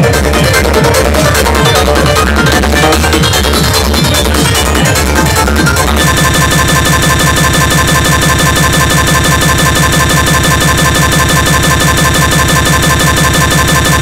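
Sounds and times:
machine-like digital buzz: 3.8s - 14.0s.

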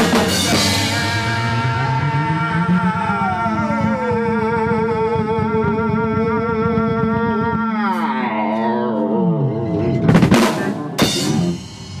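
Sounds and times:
rock band playing live: 0.0s - 2.2s, 9.6s - 12.0s
drum fill: 9.7s - 12.0s.

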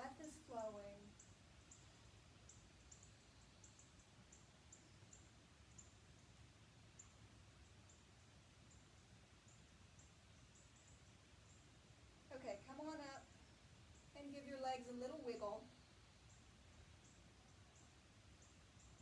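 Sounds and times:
faint high-pitched chirps: 0.0s - 19.0s.

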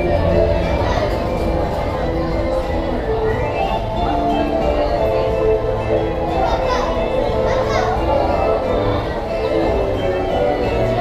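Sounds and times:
carousel music: 0.0s - 11.0s
children's voices: 0.0s - 11.0s.

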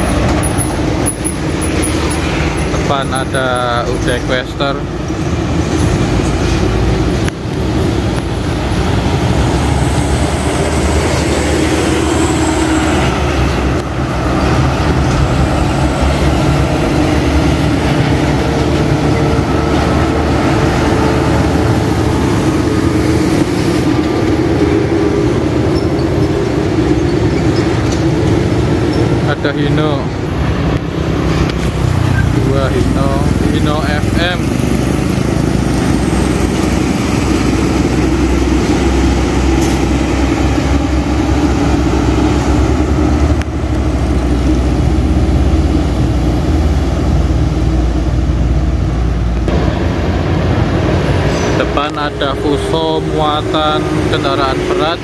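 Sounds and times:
diesel trucks passing: 0.0s - 55.0s.

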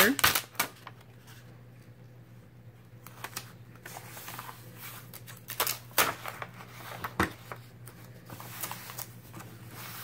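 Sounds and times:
paper rustling and crackling: 0.0s - 1.8s, 3.0s - 10.0s.

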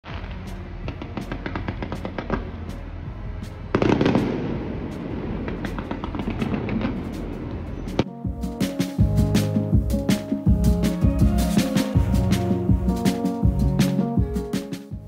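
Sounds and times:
fireworks crackling: 0.0s - 2.6s, 3.7s - 14.0s
music: 0.0s - 15.0s.

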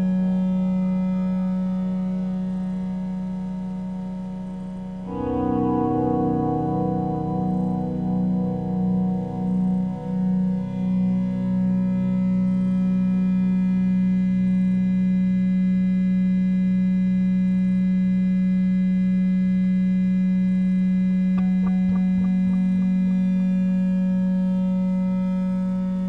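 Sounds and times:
low electronic drone: 0.0s - 19.1s, 19.8s - 26.0s
faint clicks: 21.4s - 23.2s.

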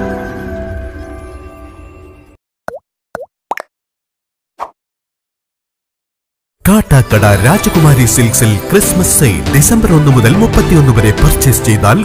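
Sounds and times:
cartoon plop sound effects: 2.7s - 3.7s.

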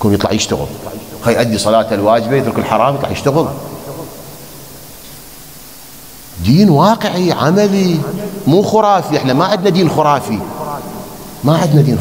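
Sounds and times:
man speaking: 0.0s - 4.4s, 6.4s - 12.0s
room noise hiss: 0.0s - 12.0s.

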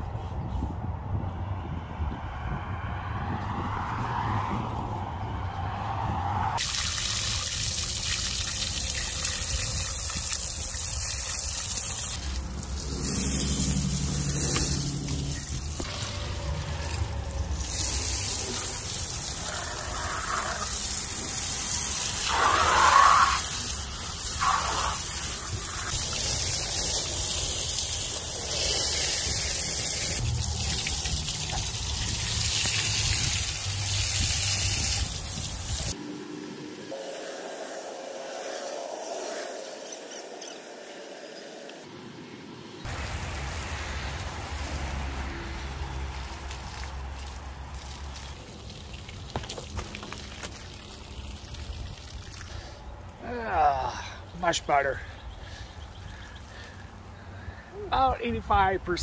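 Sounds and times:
hose water spraying on car: 6.6s - 36.0s, 42.9s - 52.7s.

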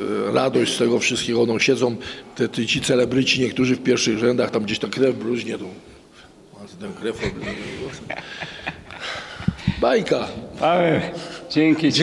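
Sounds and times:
men laughing and talking: 6.8s - 12.0s.

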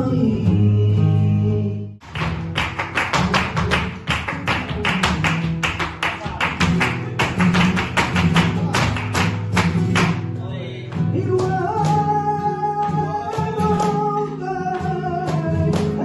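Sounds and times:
person singing: 0.0s - 2.0s, 11.0s - 16.0s
flamenco guitar: 0.0s - 16.0s.

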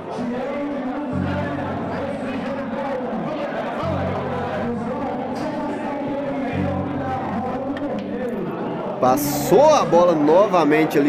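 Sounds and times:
chatter of onlookers: 0.0s - 11.0s.

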